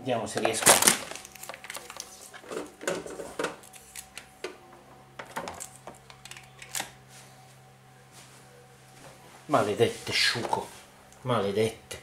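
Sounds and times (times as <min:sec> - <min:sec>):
faint steady hum: 0:00.0 - 0:12.0
plugs and cables clattering: 0:00.3 - 0:04.3.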